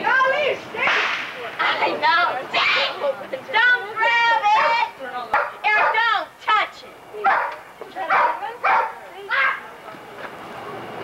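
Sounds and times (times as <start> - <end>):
children shrieking and shouting: 0.0 - 5.0, 8.1 - 9.7.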